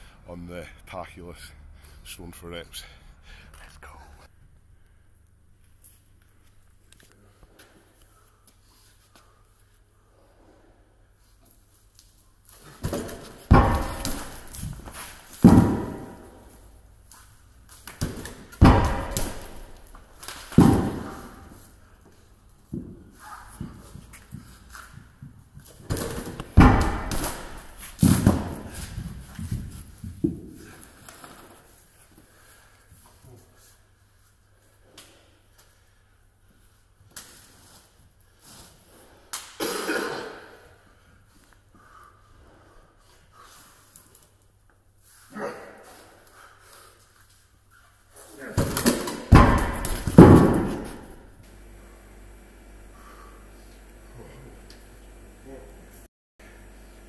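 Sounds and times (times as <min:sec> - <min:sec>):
heavy stones thudding on floor: 0:12.8 - 0:16.3, 0:17.9 - 0:21.6, 0:25.8 - 0:30.6, 0:48.6 - 0:51.2.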